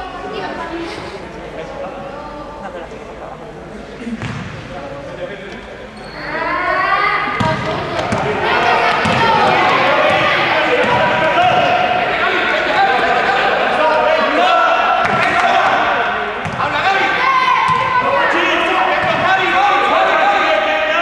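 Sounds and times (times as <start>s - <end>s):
basketball bouncing: 4.2s - 4.6s, 7.4s - 8.4s, 9.0s - 11.6s, 16.4s - 16.7s
people shouting: 8.2s - 16.1s, 16.7s - 21.0s.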